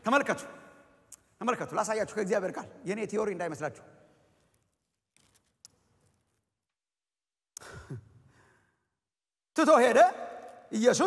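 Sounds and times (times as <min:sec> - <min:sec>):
man speaking loudly: 0:09.6 - 0:11.0.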